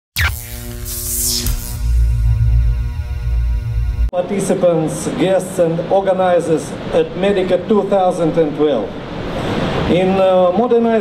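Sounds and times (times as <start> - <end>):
falling electronic sweep: 0.2 - 4.1
held synth tones: 0.2 - 4.1
low pulsing bass: 0.2 - 4.1.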